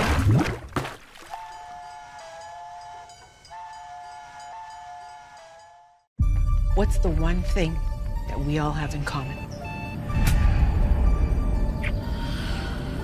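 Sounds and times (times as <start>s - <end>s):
two-note whistle-like tone: 1.4s - 6.0s.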